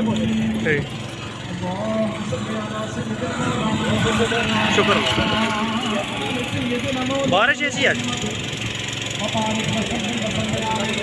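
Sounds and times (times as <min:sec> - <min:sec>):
people talking over one another: 0:00.0 - 0:11.0
vehicle engine running: 0:00.0 - 0:11.0.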